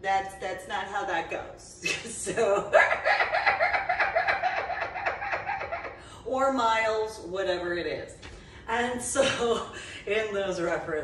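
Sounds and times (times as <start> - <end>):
woman giggling: 1.8 - 6.0.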